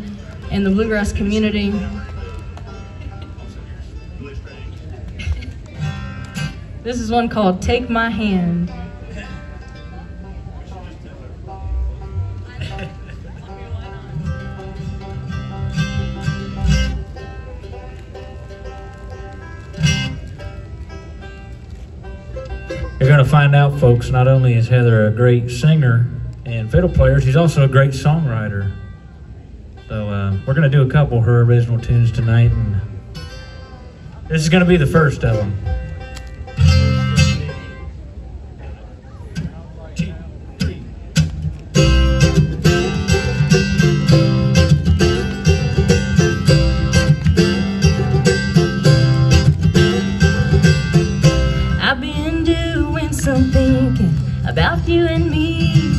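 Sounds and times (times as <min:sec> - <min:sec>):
banjo notes picked: 0:00.0 - 0:38.0, 0:38.6 - 0:55.9
acoustic guitar strumming: 0:00.0 - 0:38.1, 0:39.3 - 0:55.9
bluegrass band playing: 0:00.0 - 0:55.9
low held bass note: 0:40.0 - 0:55.9
short sharp strum: 0:40.6 - 0:51.8.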